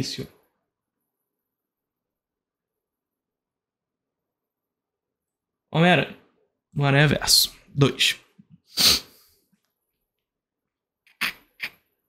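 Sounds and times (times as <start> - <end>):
man's breathy vocal bursts: 8.7 - 9.4.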